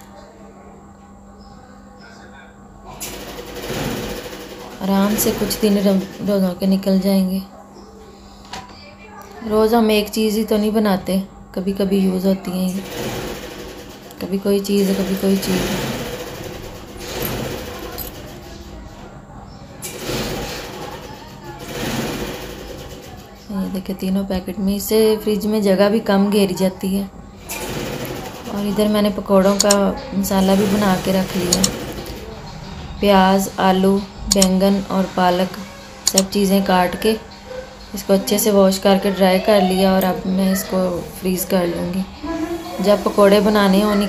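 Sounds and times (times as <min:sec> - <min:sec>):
person speaking: 0:28.5 - 0:31.8, 0:33.0 - 0:37.2, 0:38.0 - 0:44.0.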